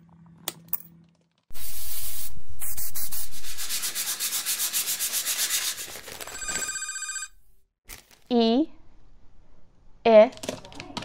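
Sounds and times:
abrasive sanding rasp: 0:02.7 - 0:06.0
telephone ringing: 0:06.3 - 0:07.5.

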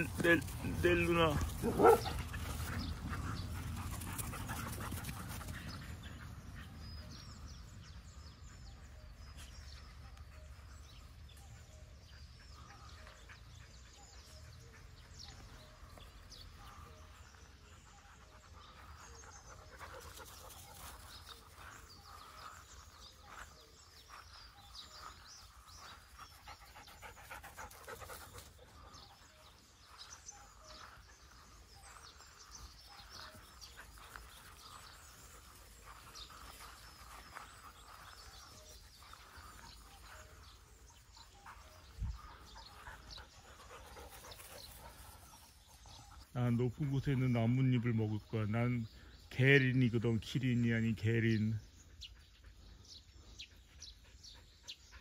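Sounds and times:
dog panting: 0:01.3 - 0:07.4, 0:10.4 - 0:46.3.

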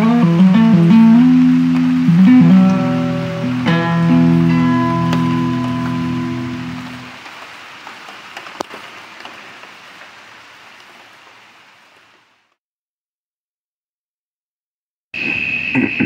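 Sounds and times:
acoustic guitar chord ringing: 0:00.0 - 0:07.1
hiss with small clicks: 0:08.0 - 0:09.4.

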